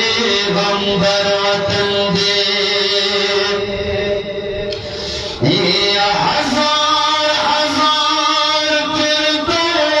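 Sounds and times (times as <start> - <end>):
man chanting unaccompanied: 0.0 - 4.7, 5.3 - 10.0.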